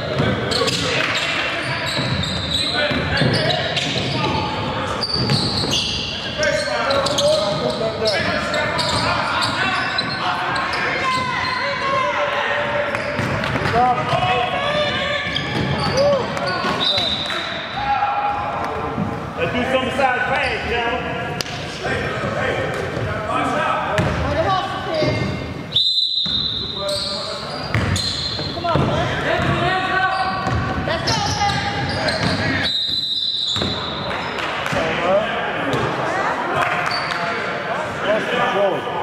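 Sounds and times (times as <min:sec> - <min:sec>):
shouting and chatter: 0:00.0 - 0:25.8
basketball bouncing on court: 0:12.9 - 0:14.3, 0:24.0 - 0:24.4, 0:27.7 - 0:29.6, 0:30.3 - 0:32.5, 0:33.5 - 0:34.0
referee whistle blasts: 0:25.7 - 0:27.1, 0:32.6 - 0:33.8.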